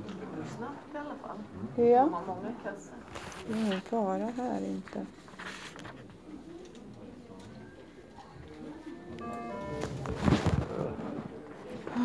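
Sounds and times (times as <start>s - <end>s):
room murmur: 0.0s - 12.0s
short electronic tone: 9.1s - 10.9s.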